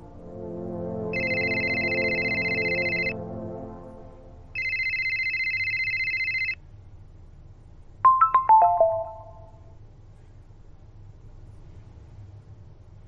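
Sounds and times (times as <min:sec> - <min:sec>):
falling ringtone notes: 0:01.2 - 0:03.2, 0:04.6 - 0:06.6, 0:08.1 - 0:09.6
high electronic beep: 0:08.1 - 0:09.5.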